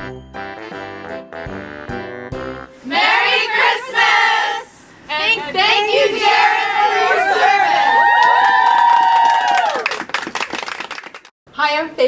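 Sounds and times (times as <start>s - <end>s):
group cheering: 5.9s - 10.2s
people clapping: 7.8s - 11.4s.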